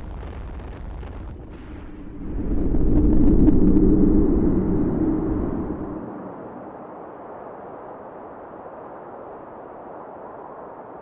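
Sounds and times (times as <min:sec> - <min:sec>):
building collapse rumble: 0:00.0 - 0:06.1.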